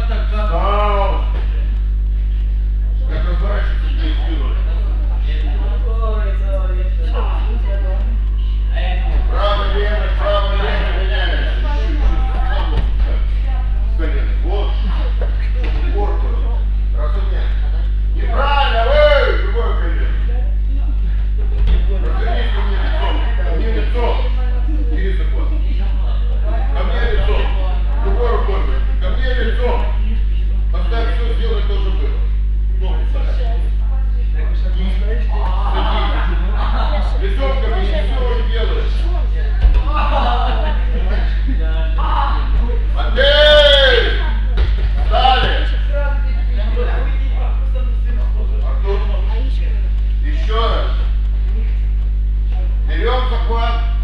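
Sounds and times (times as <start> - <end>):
indistinct voices talking: 0.0 - 54.0
steady low hum: 0.0 - 54.0
loud drawn-out cry: 42.0 - 44.2.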